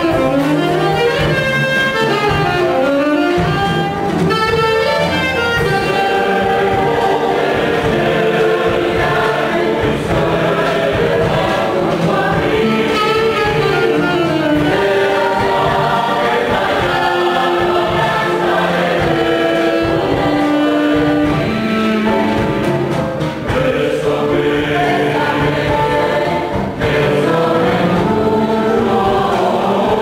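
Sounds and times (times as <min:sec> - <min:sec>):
mixed choir singing in harmony: 0:00.0 - 0:30.0.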